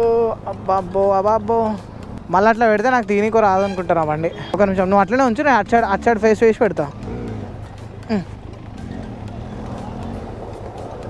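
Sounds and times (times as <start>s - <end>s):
motorcycle engine at low revs: 4.4s - 11.0s.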